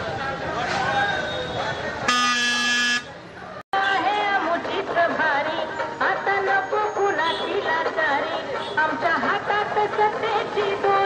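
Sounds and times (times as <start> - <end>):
street crowd voices: 0.0 - 11.0
vehicle horn: 2.0 - 3.2
singing with music: 3.8 - 11.0.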